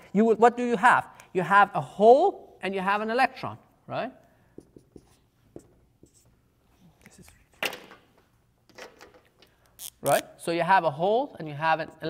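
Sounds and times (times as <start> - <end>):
marker strokes on a whiteboard: 4.4 - 7.2.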